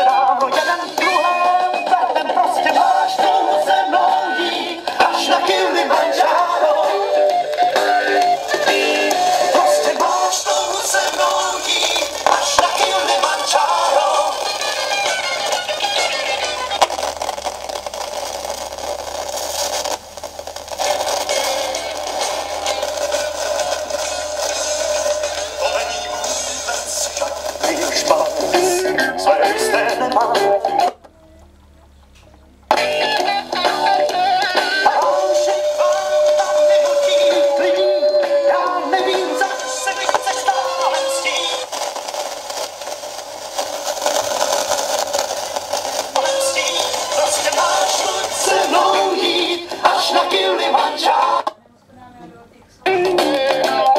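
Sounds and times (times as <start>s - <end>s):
crackling scratchy speaker noise: 0.0s - 51.6s, 52.7s - 53.9s
record hiss: 0.0s - 53.9s.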